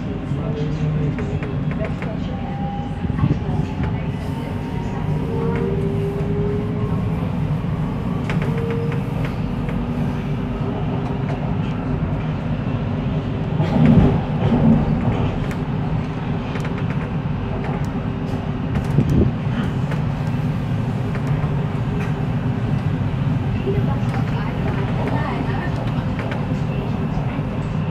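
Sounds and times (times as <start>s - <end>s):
train wheels rumbling on rails: 0.0s - 27.9s
train bumps: 13.6s - 20.2s.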